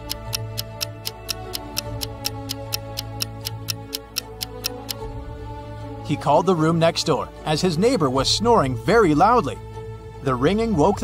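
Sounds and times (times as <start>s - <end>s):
timer ticking: 0.0s - 5.1s
soft background music: 0.0s - 11.0s.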